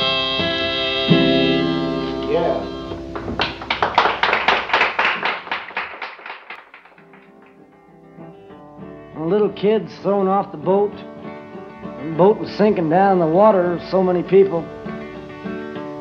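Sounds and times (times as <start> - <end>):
acoustic guitar chords and strums: 0.0 - 4.2, 6.8 - 16.0.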